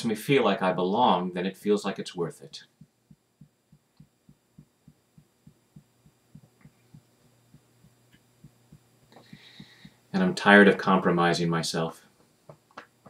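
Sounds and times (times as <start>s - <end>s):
faint steady hum: 0.0s - 13.0s
fingertips tapping on skin: 2.8s - 10.0s.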